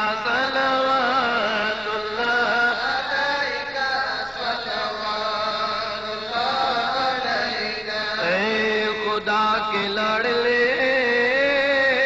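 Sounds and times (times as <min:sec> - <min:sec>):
devotional chanting voice: 0:00.0 - 0:12.0.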